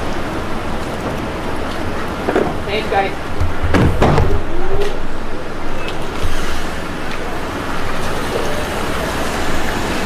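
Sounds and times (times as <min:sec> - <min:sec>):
car driving on wet street: 0:00.0 - 0:10.0
city traffic noise: 0:00.0 - 0:10.0.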